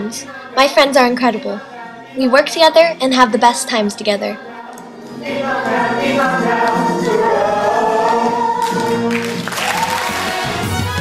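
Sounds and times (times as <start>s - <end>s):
choir singing held notes: 0.0s - 11.0s.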